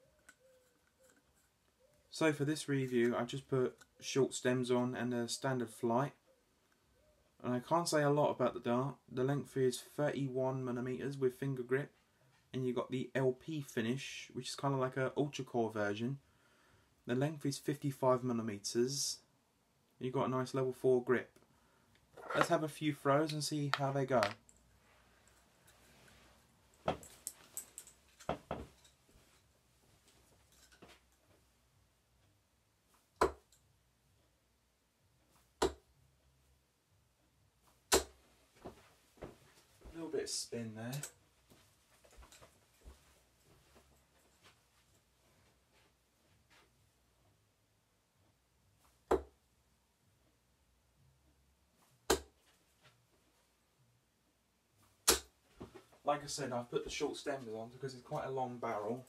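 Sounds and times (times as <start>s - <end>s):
darts thudding into dartboard: 35.6s - 35.8s, 37.9s - 38.2s, 49.1s - 49.3s, 52.1s - 52.4s, 55.0s - 55.3s.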